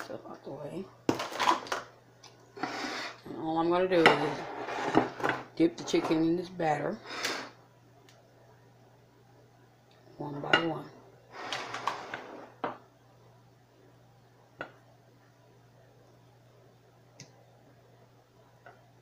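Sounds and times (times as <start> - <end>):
person speaking: 3.2 - 4.9, 5.5 - 7.0.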